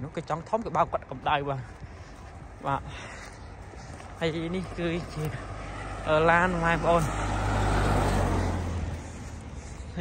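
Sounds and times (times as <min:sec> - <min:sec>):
car driving past: 0:04.6 - 0:09.9.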